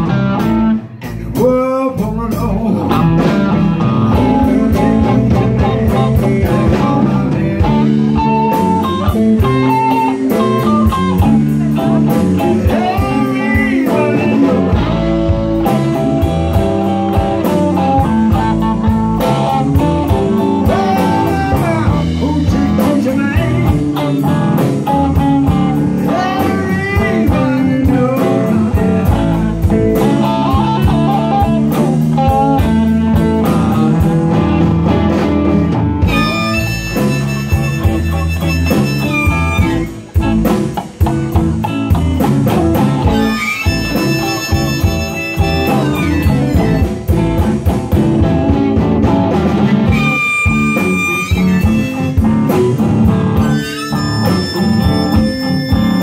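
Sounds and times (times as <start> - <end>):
bass guitar: 0.0 - 56.0
drums: 0.0 - 56.0
lead electric guitar bending notes: 0.0 - 56.0
second guitar: 0.0 - 56.0.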